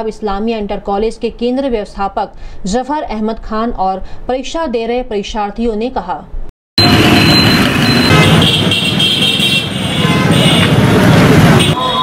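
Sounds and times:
busy street traffic: 6.8s - 12.0s
vehicle horns: 6.8s - 12.0s.

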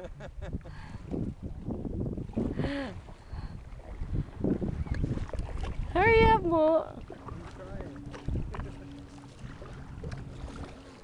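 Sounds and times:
water lapping against hulls: 0.0s - 11.0s
paddles dipping in water: 0.5s - 11.0s.

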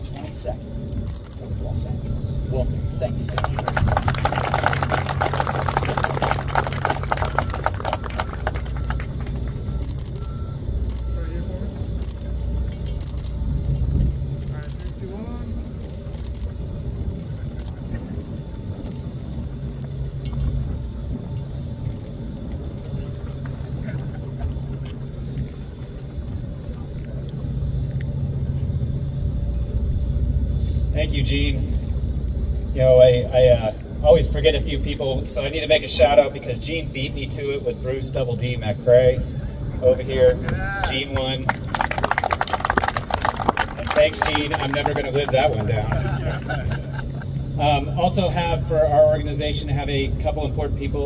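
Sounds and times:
steady low rumble: 0.0s - 51.0s
crowd applauding: 3.3s - 9.8s, 40.4s - 46.8s.

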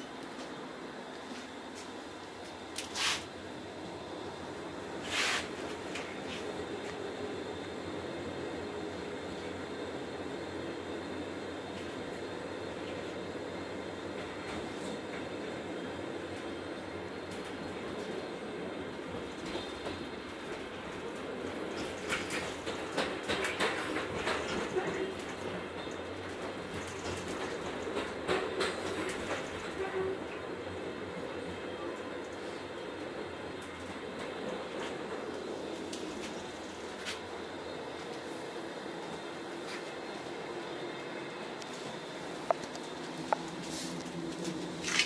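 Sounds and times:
train wheels rumbling on rail: 0.0s - 45.0s.

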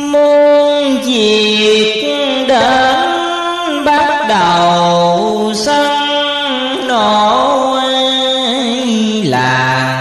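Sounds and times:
person chanting a verse: 0.0s - 10.0s.

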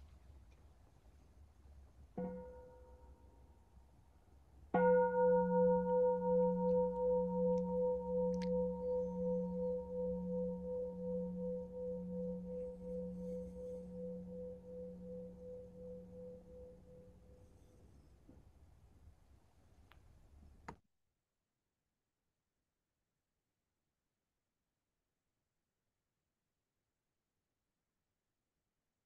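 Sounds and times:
singing bowl ringing: 4.8s - 17.8s.

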